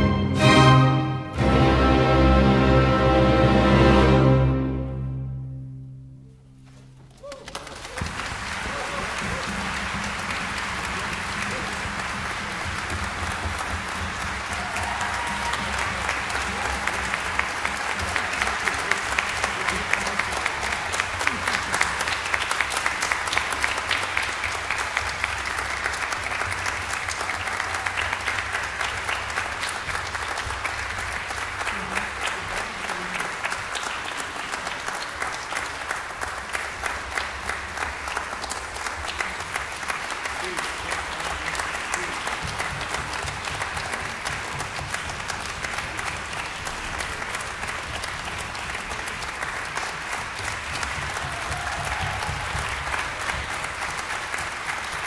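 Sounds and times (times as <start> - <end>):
audience applauding: 7.1 - 55.0.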